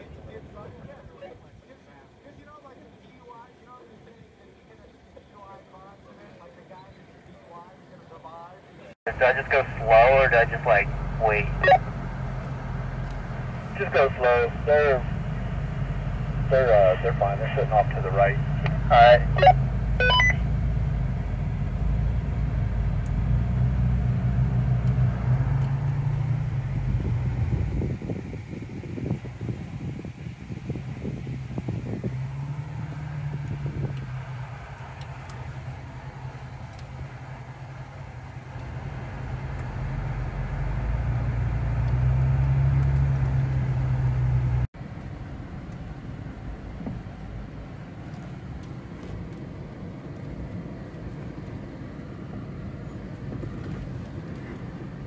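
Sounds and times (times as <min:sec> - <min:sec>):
vehicle engine droning: 0:00.0 - 0:55.0.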